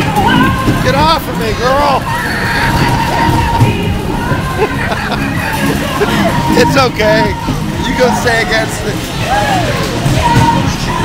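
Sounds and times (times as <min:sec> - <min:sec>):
amusement ride music: 0:00.0 - 0:11.0
crowd hubbub and shouts: 0:00.0 - 0:11.0.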